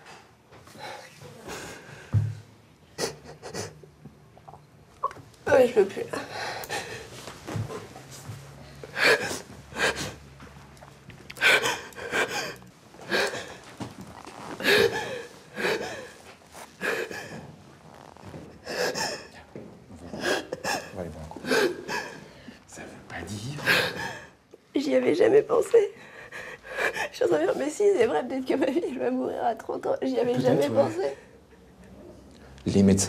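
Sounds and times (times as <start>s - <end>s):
gasping sobs: 11.3s - 13.6s, 14.6s - 16.2s, 20.1s - 22.4s.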